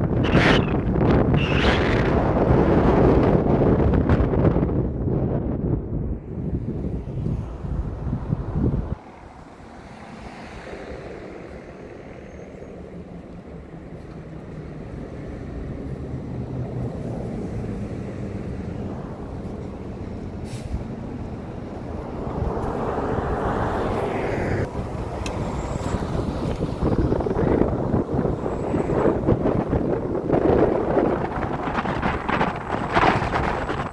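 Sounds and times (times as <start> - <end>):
car driving in traffic: 0.0 - 33.9
rush of noise: 0.0 - 33.9.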